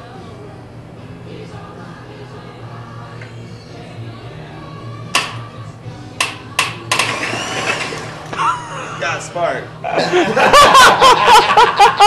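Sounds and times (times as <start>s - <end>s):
steady low hum: 0.0s - 11.8s
background music: 0.0s - 12.0s.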